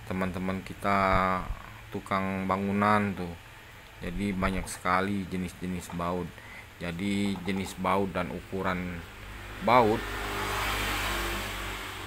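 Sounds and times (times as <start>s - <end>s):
motor vehicle passing: 8.8s - 12.0s.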